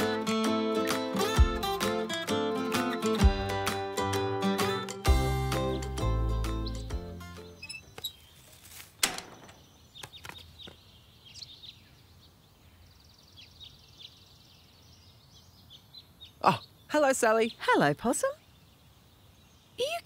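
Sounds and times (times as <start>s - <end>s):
birds chirping: 4.6s - 20.0s
bird trill: 6.2s - 8.5s
quiet outdoor ambience: 7.1s - 20.0s
thud: 9.0s - 9.6s.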